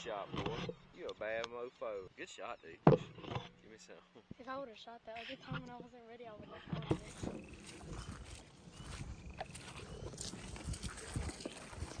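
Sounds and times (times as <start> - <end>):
footsteps on field ground: 6.9 - 12.0.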